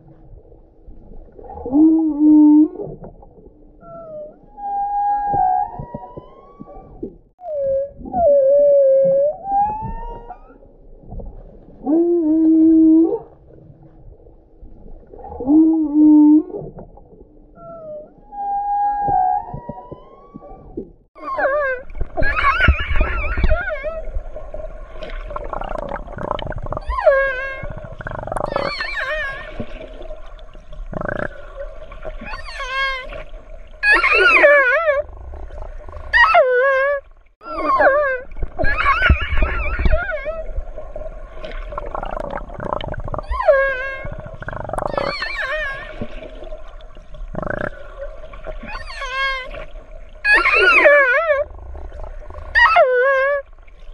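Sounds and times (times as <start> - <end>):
orcas calling underwater: 0.0 - 53.9.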